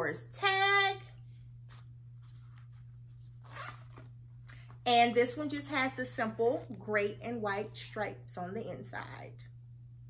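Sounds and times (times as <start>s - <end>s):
zipper rasp: 3.4s - 4.1s.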